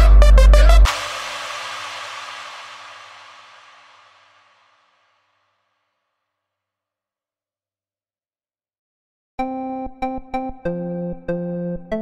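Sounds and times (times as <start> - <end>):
hissing electronic music tail: 0.0 - 5.0.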